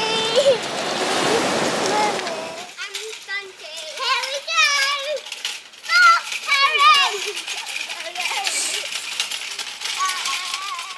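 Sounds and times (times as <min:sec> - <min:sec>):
children shouting while playing: 0:05.8 - 0:07.4.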